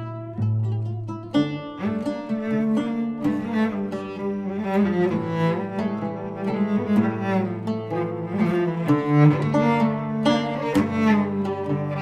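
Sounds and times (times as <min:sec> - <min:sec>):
bowed cello notes: 0:00.0 - 0:12.0
plucked oud notes: 0:00.0 - 0:12.0.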